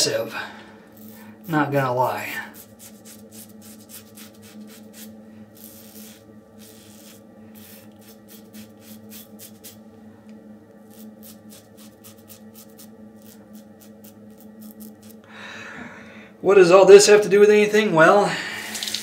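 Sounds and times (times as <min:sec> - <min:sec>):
low room hum: 0:00.0 - 0:19.0
razor scraping stubble: 0:00.9 - 0:09.8, 0:10.8 - 0:15.2.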